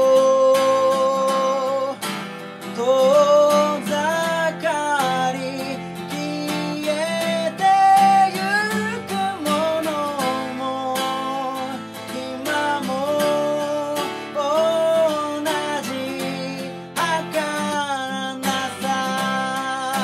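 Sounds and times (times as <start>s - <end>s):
acoustic guitar strumming: 0.0s - 20.0s
man singing: 0.0s - 20.0s.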